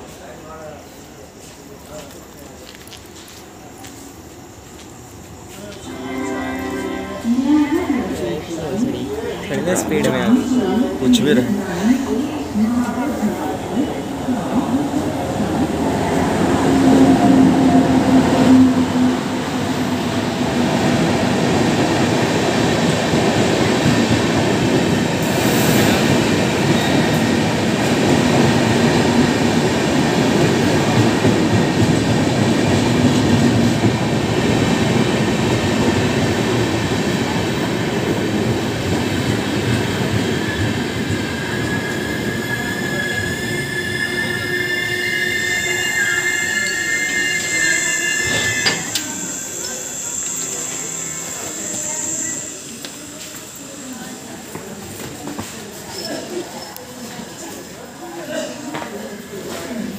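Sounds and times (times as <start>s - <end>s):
electric locomotive passing: 0.2s - 58.0s
train wheels rumbling on rail: 7.7s - 57.8s
train wheels and brakes squealing: 39.1s - 54.1s, 55.4s - 57.1s.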